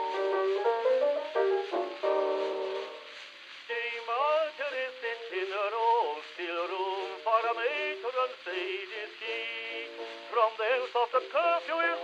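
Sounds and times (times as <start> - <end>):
old gramophone record music: 0.0 - 12.0.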